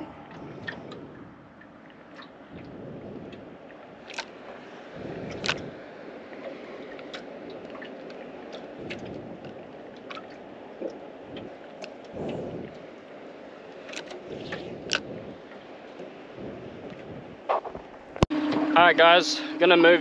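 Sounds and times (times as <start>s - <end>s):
water around boat: 0.0s - 20.0s
wind: 0.0s - 20.0s.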